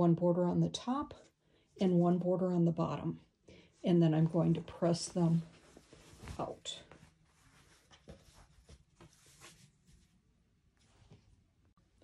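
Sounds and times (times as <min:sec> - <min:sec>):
fabric rustling: 0:03.8 - 0:11.8.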